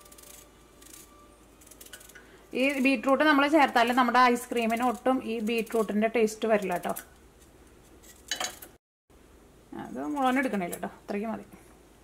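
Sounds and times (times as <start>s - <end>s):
person talking: 9.7s - 11.6s.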